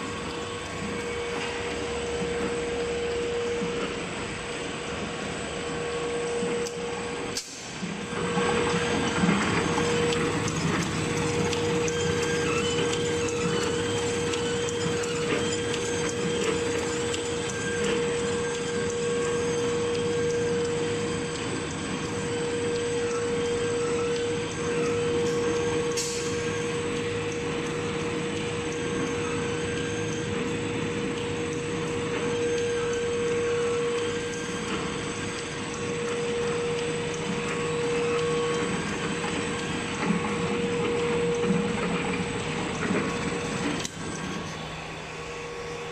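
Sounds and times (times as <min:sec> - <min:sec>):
machine whine: 0:00.0 - 0:45.9.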